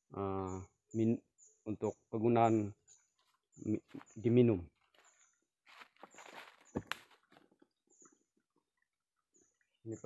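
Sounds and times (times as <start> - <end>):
rustling footsteps on leaves: 4.8 - 7.4.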